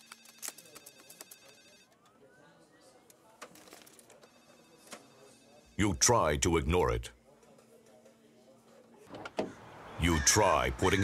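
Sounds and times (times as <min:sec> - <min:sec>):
faint telephone ringing: 0:00.0 - 0:08.8.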